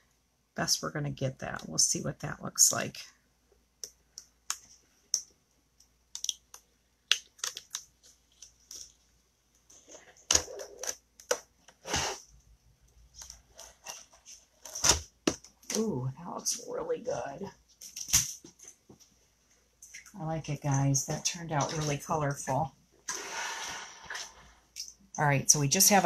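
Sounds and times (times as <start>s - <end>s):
rustling scrapes: 23.1s - 24.6s.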